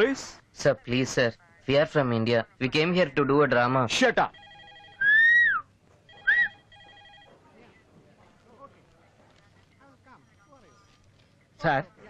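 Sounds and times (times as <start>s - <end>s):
telephone ringing: 4.3s - 5.4s, 6.0s - 7.6s.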